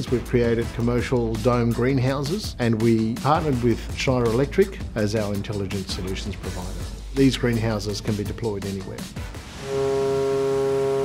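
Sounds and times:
background music: 0.0 - 11.0
ship's horn blast: 9.5 - 11.0.

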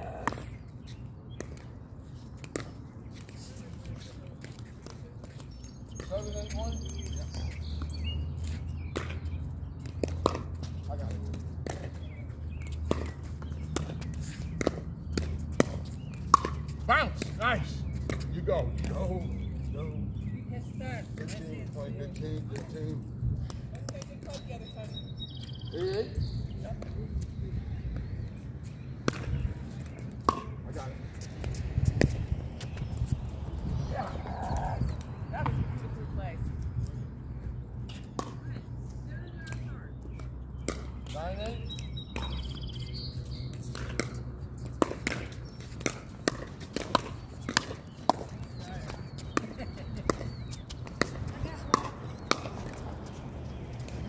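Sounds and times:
paddles hitting plastic ball: 43.5 - 54.0.

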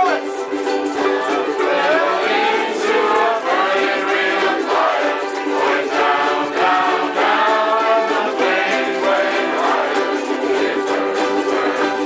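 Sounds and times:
ukuleles strumming: 0.0 - 12.0
crowd singing along: 0.8 - 12.0.

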